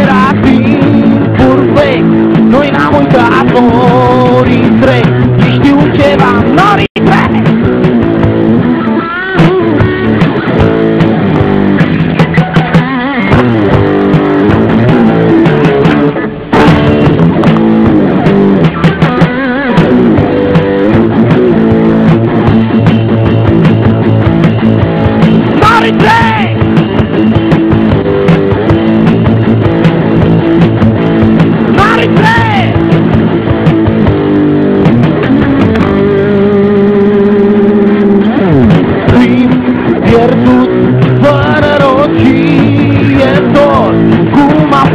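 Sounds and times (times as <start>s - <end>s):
rock band playing: 0.0s - 44.9s.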